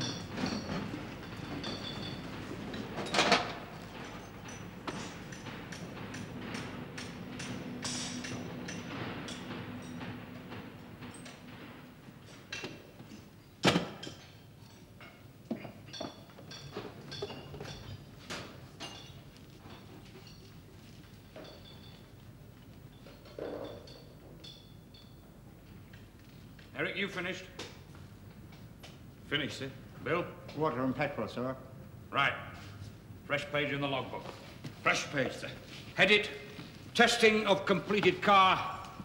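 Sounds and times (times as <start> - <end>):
workshop knocks and bangs: 0.0 - 14.3.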